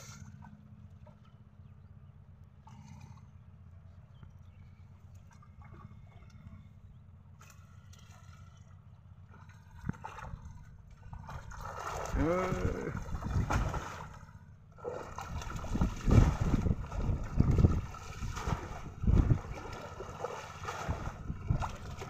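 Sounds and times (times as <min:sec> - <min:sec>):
water splashing from wading: 0:04.8 - 0:22.0
person shouting: 0:12.2 - 0:13.0.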